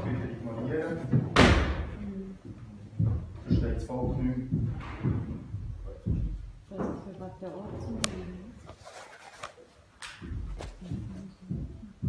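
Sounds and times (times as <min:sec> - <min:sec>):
loud thump: 0:01.2 - 0:02.0.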